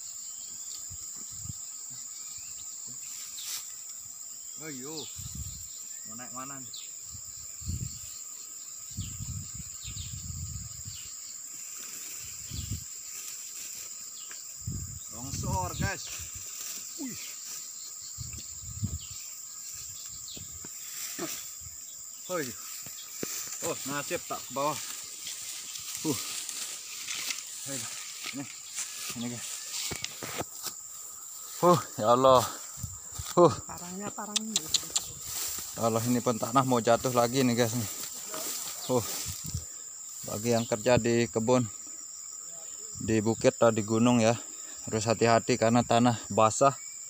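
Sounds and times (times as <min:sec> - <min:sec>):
insect chirps: 0:00.0 - 0:47.0
insects droning: 0:00.0 - 0:47.0.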